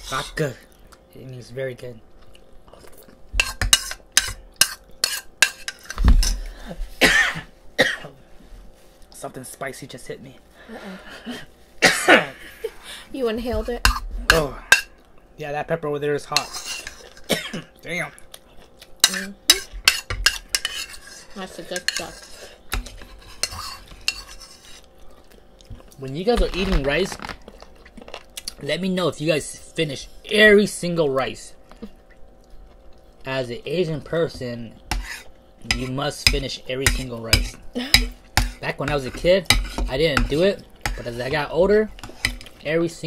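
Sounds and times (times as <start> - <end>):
spoons clinking against bowls: 3.4 - 6.0, 19.0 - 24.7, 35.7 - 41.4
spoons clinking on ceramic bowls: 21.7 - 24.4.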